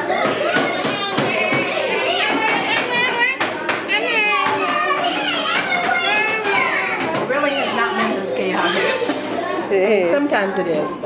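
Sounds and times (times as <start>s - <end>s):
young children's voices at play: 0.0s - 11.0s.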